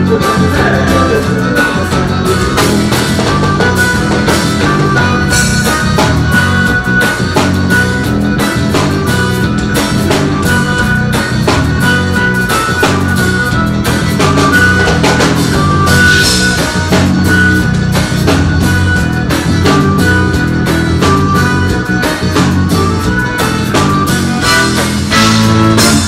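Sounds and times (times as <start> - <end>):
accordion melody: 0.0 - 26.0
drum kit steady beat: 0.0 - 26.0.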